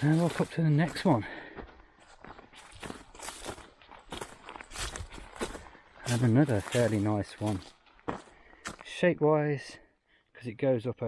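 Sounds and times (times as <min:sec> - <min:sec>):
footsteps crunching on dry leaves: 0:00.0 - 0:08.9.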